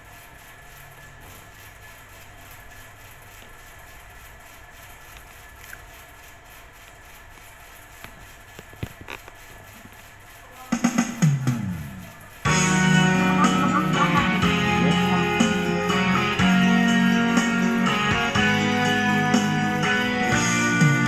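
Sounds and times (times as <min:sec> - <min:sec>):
faint hum: 0:00.0 - 0:21.0.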